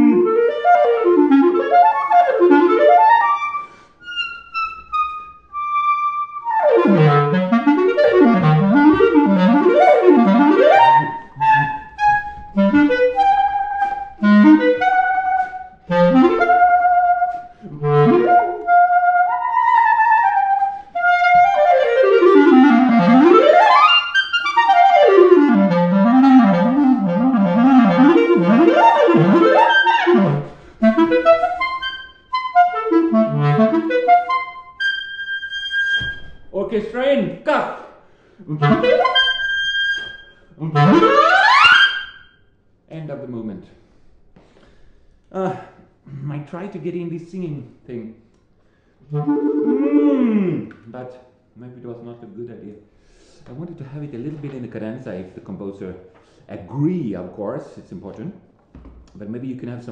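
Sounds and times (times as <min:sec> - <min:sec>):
solo clarinet playing: 0:00.0 - 0:36.5, 0:38.4 - 0:42.5, 0:49.0 - 0:50.7.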